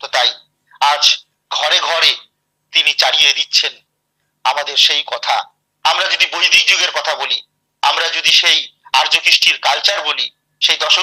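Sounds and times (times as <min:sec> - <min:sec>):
man speaking through call: 0:00.0 - 0:02.2.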